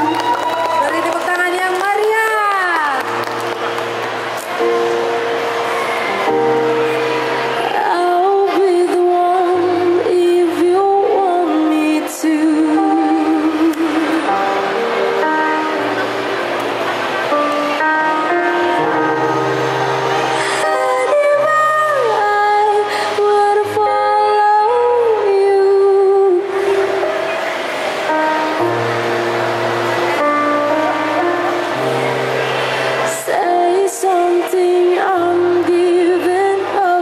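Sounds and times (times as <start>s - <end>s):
instrumental accompaniment: 3.0s - 24.6s, 26.2s - 36.8s
girl singing a pop ballad: 7.7s - 14.4s, 20.4s - 26.9s, 33.1s - 37.0s.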